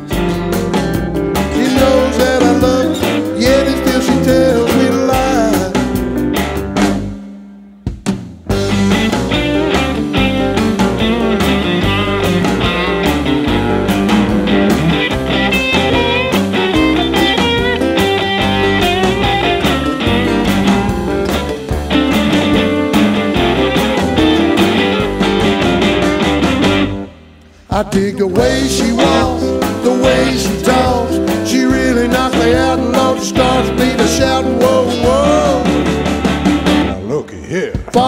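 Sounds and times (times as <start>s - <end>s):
lead guitar: 0.0s - 7.4s, 8.5s - 27.6s, 28.3s - 37.1s
blues-rock band playing: 0.0s - 38.0s.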